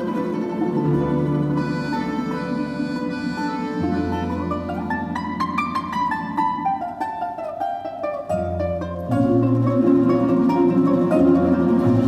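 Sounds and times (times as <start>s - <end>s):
folk instrument orchestra playing: 0.0s - 12.0s
plucked balalaika melody: 0.0s - 12.0s.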